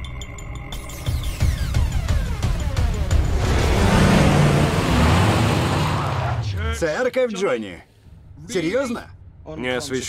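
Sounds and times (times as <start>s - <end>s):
car engine running: 0.8s - 6.6s
rushing noise: 2.9s - 6.4s.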